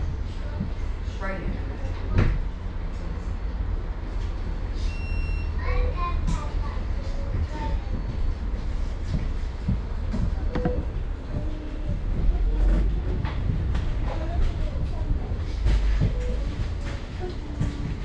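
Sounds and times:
bus engine rumble: 0.0s - 18.0s
bodywork rattles and knocks: 7.3s - 18.0s.

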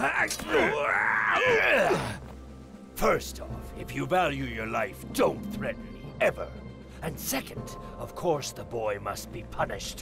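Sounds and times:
man groaning and straining: 0.0s - 2.2s.

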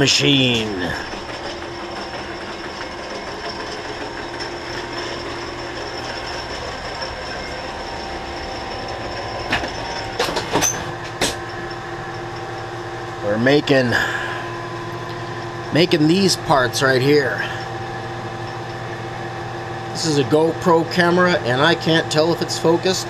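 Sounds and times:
lathe mechanical hum: 0.0s - 23.0s.

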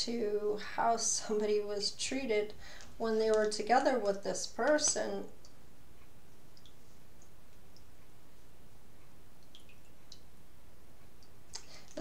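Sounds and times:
low background hum: 0.0s - 12.0s
short breath: 2.6s - 2.9s.

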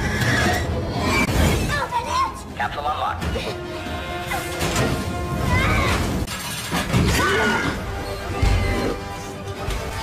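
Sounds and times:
orchestral action score: 0.0s - 10.0s.

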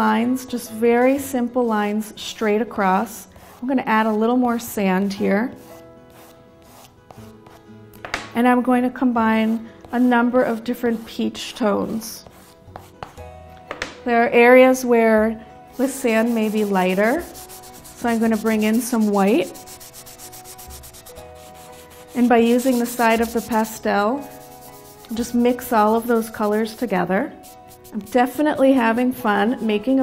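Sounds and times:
faint background music: 0.0s - 30.0s
chalk pastel rubbing on paper: 3.3s - 4.2s, 5.6s - 7.6s, 12.2s - 13.2s, 15.7s - 28.6s, 29.2s - 30.0s.

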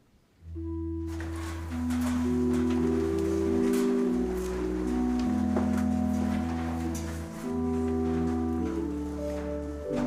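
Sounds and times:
church organ chords: 0.4s - 10.0s
congregation shuffling: 0.6s - 10.0s.

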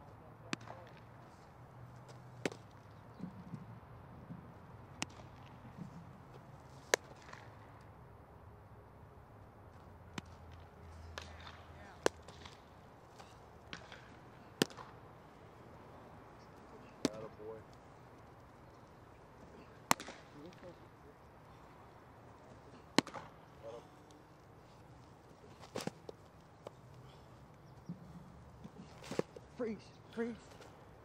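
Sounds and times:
baseball popping into leather mitt: 0.5s - 1.1s, 2.0s - 7.6s, 10.1s - 15.0s, 16.4s - 18.8s, 19.4s - 20.8s, 22.4s - 29.5s.

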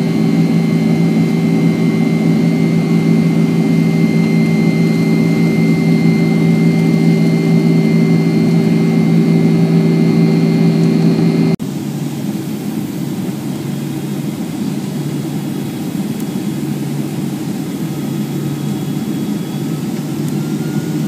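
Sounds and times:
jet engine drone: 0.0s - 21.0s.

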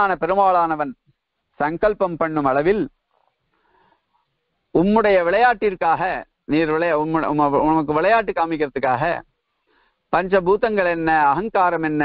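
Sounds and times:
man speaking: 0.0s - 3.0s, 4.7s - 9.3s, 10.1s - 12.0s.

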